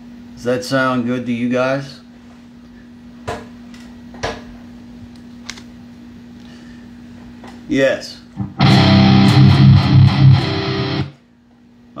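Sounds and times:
guitar amp hum: 8.3s - 11.6s.

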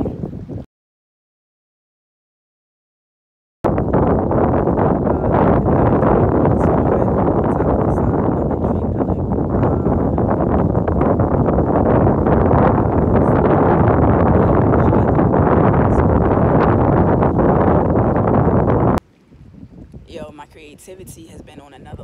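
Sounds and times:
wind buffeting a microphone: 0.0s - 0.7s, 3.6s - 22.0s.

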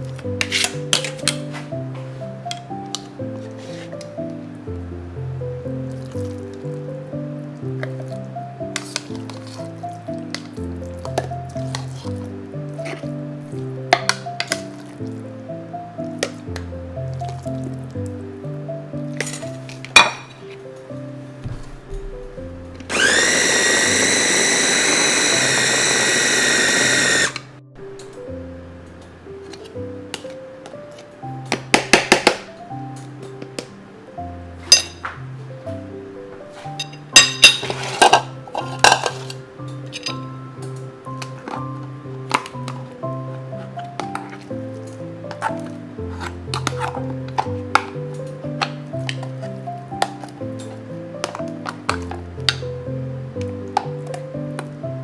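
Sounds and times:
background music with steady beat: 0.0s - 55.0s
food chopper motor running: 22.9s - 27.5s.

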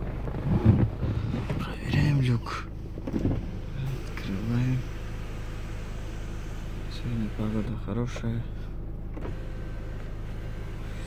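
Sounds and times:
sunroof motor whining: 0.0s - 11.0s.

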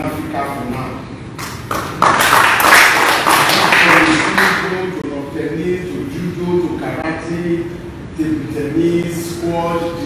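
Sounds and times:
people clapping: 1.4s - 4.8s.

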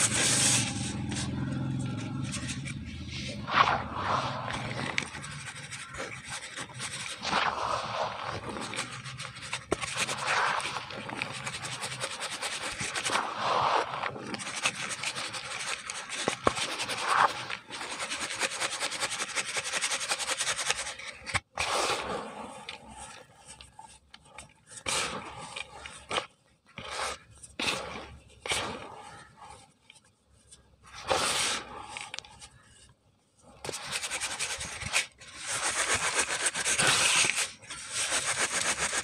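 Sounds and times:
gritty cement scraping: 0.0s - 17.9s.

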